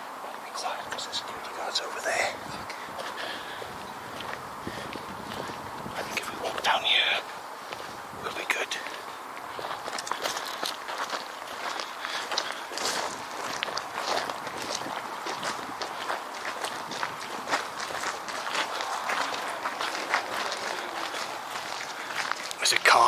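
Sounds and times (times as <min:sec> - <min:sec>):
footsteps crunching on gravel: 0:00.3 - 0:23.0.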